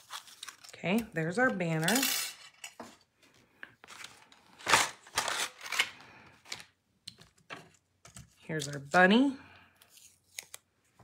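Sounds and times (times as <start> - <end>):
paper handling: 9.8 - 11.0.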